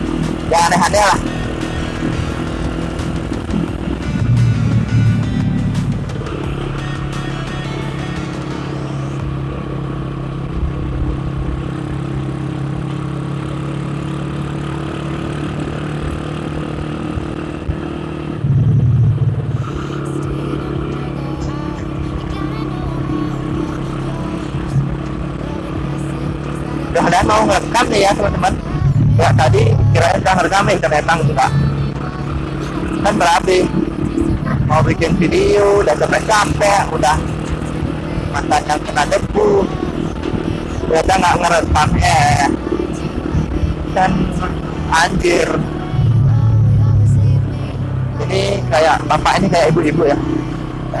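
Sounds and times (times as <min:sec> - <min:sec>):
music: 0:00.0 - 0:09.4, 0:19.6 - 0:35.9, 0:37.2 - 0:49.9
motorcycle engine running: 0:00.0 - 0:51.0.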